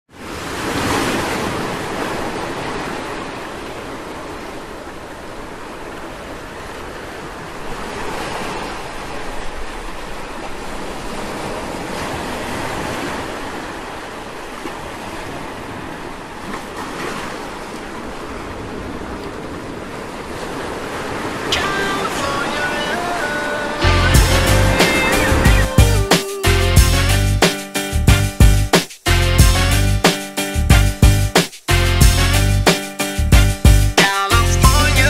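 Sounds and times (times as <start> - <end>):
surf washing onto beach: 0.1 - 26.5.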